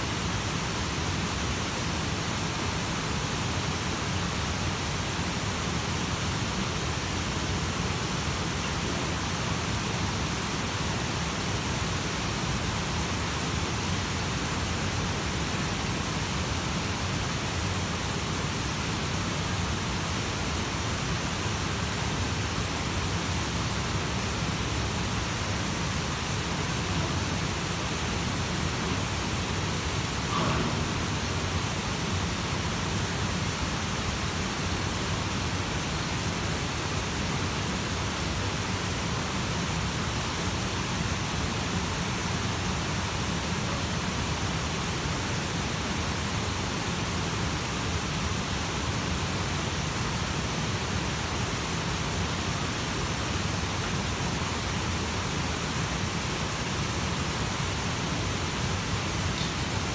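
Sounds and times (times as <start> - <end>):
rush of flowing water: 0.0 - 59.9.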